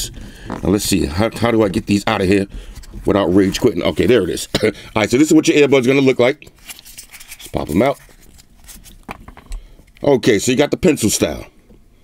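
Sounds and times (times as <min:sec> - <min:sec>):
plastic and fingers rubbing: 0:00.0 - 0:04.5, 0:05.2 - 0:10.0.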